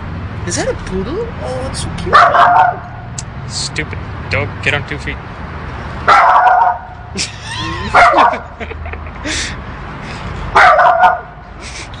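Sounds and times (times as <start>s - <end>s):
small dog barking: 2.1s - 2.8s, 6.1s - 6.8s, 7.9s - 8.5s, 10.6s - 11.3s.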